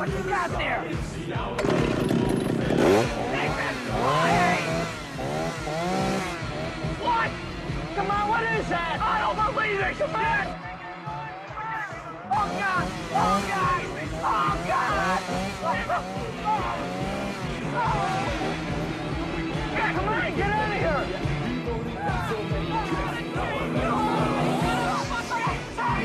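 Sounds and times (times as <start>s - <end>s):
car engine running hard: 0.0s - 26.0s
film music: 0.0s - 26.0s
chainsaw revving: 1.5s - 10.6s, 12.3s - 26.0s.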